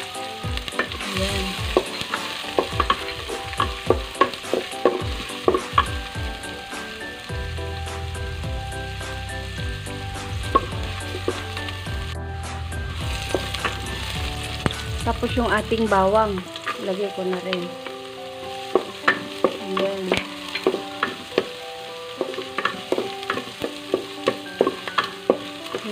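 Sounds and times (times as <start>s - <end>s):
onions sizzling in hot oil: 0.0s - 25.9s.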